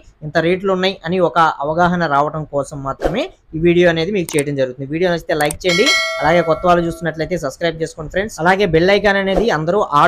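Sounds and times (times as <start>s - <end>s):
man talking: 0.2s - 10.0s
bell chime: 5.7s - 7.3s.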